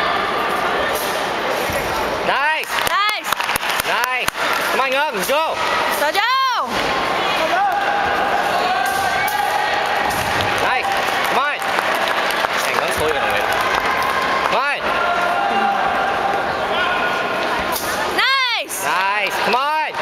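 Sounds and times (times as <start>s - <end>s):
many voices talking: 0.0s - 11.7s, 12.4s - 20.0s.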